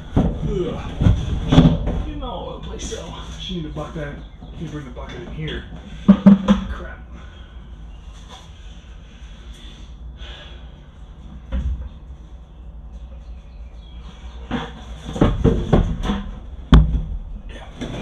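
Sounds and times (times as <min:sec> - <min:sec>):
plastic bucket knocking against container: 0:06.1 - 0:06.7.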